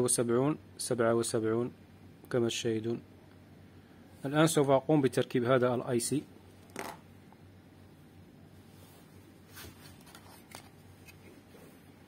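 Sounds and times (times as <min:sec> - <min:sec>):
low steady hum: 0:00.0 - 0:12.0.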